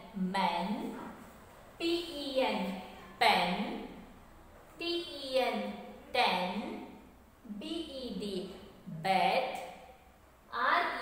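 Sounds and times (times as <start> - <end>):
woman speaking: 0.0 - 1.2, 1.8 - 4.1, 4.8 - 9.9.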